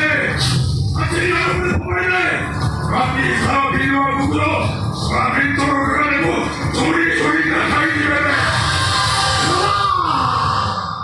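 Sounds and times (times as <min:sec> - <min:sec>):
background music: 0:00.0 - 0:11.0
man shouting drawn-out: 0:06.8 - 0:10.8.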